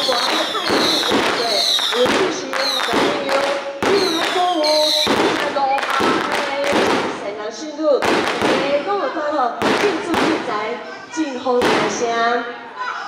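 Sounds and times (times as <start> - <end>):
fireworks bangs: 0.0 - 12.3.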